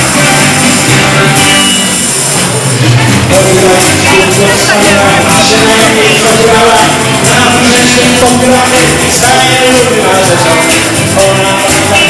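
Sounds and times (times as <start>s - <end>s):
live dance band playing: 0.0s - 12.0s.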